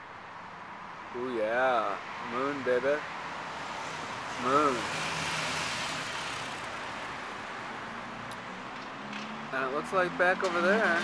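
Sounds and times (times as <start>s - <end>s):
vehicle passing: 1.8s - 11.0s.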